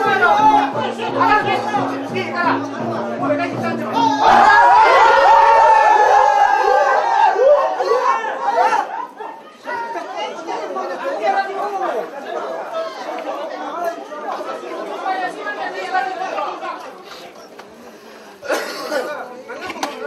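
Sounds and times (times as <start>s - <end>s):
overlapping chatter of voices: 0.0s - 20.0s.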